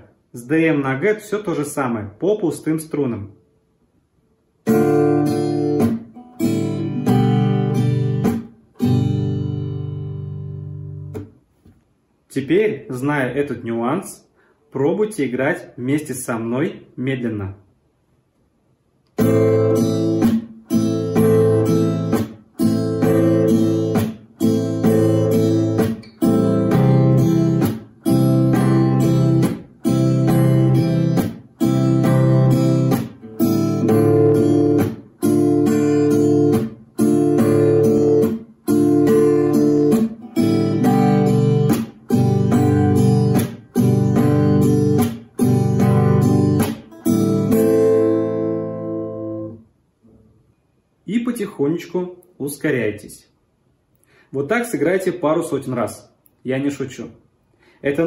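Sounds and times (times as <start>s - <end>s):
classical guitar strumming chords: 4.6s - 11.7s, 19.2s - 50.7s.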